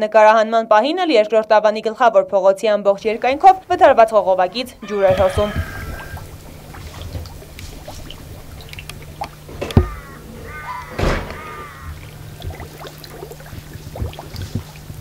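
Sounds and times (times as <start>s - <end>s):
water running over ground: 3.0s - 15.0s.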